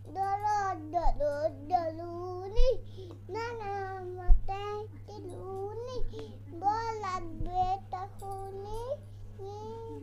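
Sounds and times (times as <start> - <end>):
child singing a chanted rhyme: 0.1 - 10.0.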